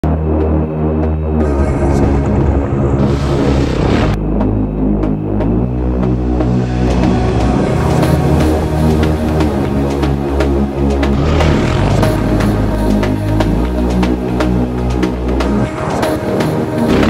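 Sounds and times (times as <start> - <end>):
low sustained music chords: 0.0 - 17.0.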